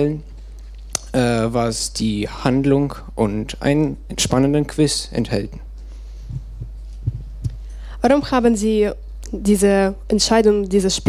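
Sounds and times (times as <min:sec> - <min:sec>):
low electrical hum: 0:00.0 - 0:11.0
microphone handling thumps: 0:06.2 - 0:08.4.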